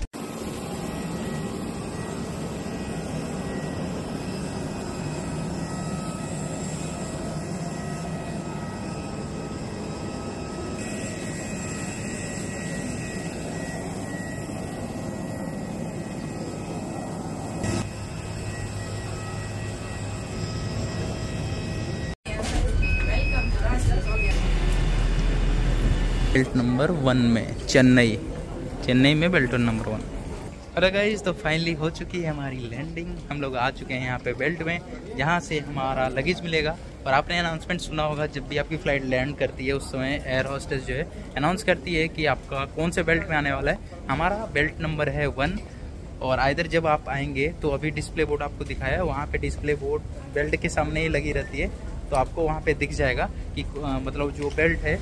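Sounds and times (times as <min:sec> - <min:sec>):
jet engine whine: 0:00.0 - 0:26.8.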